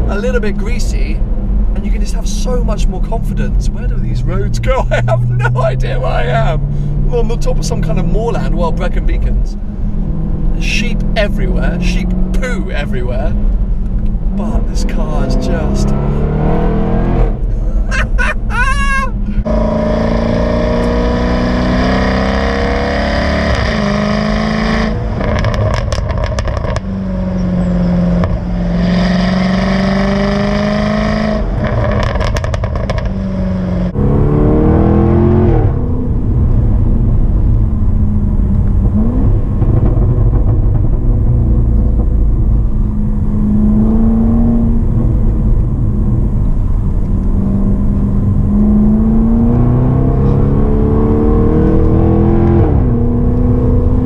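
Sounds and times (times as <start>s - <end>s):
car engine accelerating: 0.0s - 54.0s
exhaust crackles and pops: 24.9s - 28.6s, 31.4s - 33.2s, 36.2s - 43.5s.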